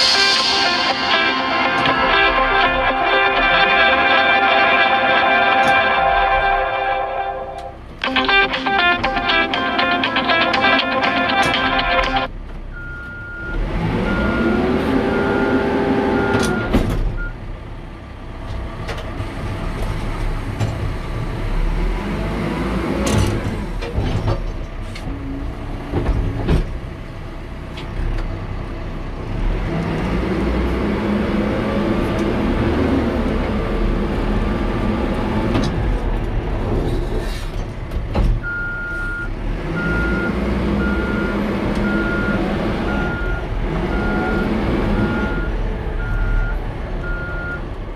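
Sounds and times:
diesel engine running under load: 0.0s - 47.9s
back-up alarm beeping: 38.4s - 47.6s.

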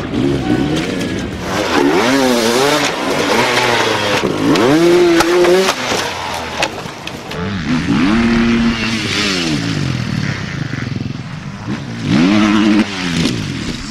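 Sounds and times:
bikes crashing clatter: 0.0s - 13.9s
dirt bike engines revving: 0.0s - 13.9s.

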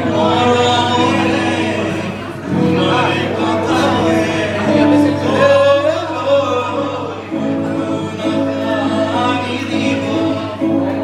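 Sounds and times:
acoustic guitar: 0.0s - 11.0s
group of voices singing: 0.0s - 11.0s.

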